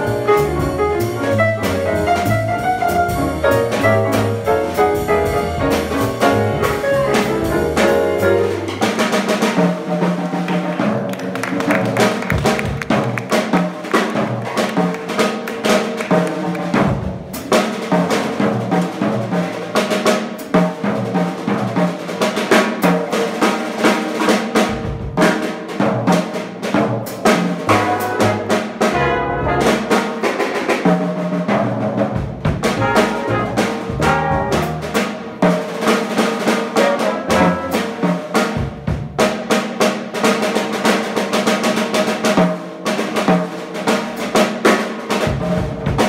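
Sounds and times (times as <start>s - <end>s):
jazz band playing: 0.0s - 46.0s
snare drum: 0.0s - 46.0s.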